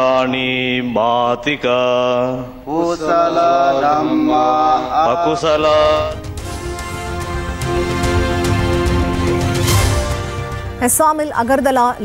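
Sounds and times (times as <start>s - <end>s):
devotional chanting: 0.0s - 6.6s.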